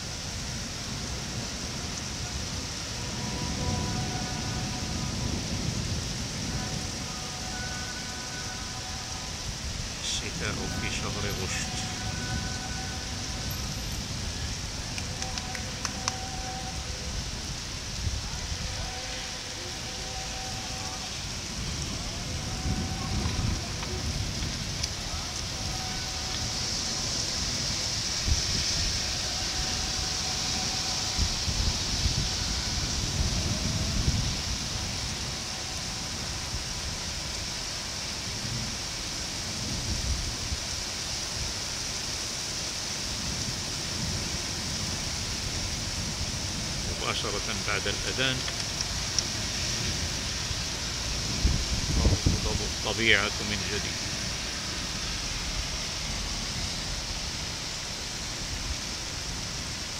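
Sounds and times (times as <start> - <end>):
heavy rain pouring: 0.0 - 59.9
wind buffeting microphone: 21.2 - 37.6, 48.5 - 52.8.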